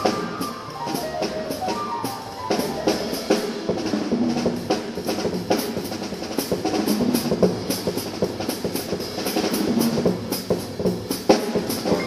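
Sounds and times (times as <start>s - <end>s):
double bass: 0.0s - 4.6s
acoustic piano: 0.0s - 5.4s
drum kit with cymbal strokes: 0.0s - 12.0s.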